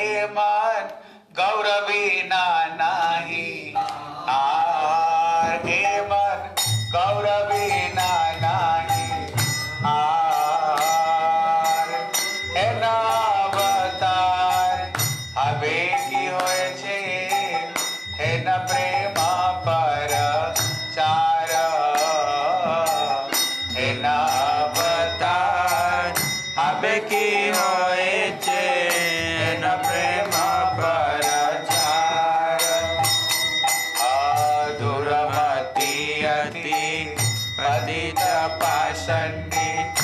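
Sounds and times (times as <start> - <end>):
devotional chant singing: 0.0 - 40.0
drum beating: 5.2 - 40.0
metal hand cymbals: 6.4 - 40.0.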